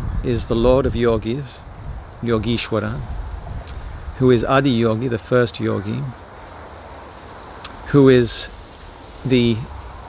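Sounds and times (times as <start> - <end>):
low outdoor background rumble: 0.0 - 10.0
man speaking: 0.2 - 3.1, 4.2 - 6.2, 7.7 - 8.6, 9.2 - 9.8.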